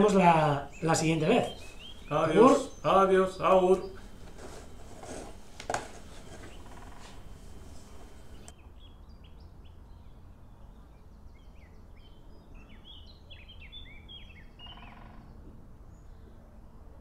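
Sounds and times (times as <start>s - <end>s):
birds chirping: 0.0s - 16.2s
low rumble of outdoor noise: 0.0s - 17.0s.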